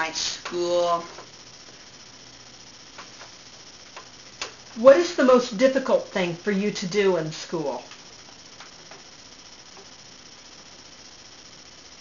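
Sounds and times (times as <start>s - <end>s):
person speaking: 0.0s - 1.2s, 4.8s - 8.0s
faint low hum: 0.0s - 12.0s.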